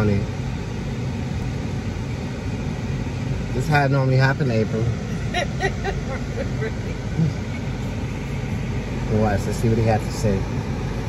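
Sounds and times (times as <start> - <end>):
car interior engine hum: 0.0 - 11.0.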